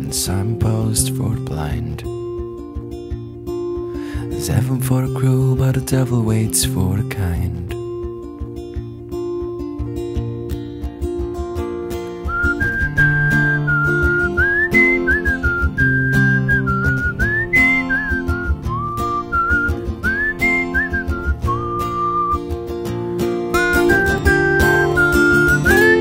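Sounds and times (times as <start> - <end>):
strummed guitar: 0.0 - 26.0
whistled melody: 12.1 - 26.0.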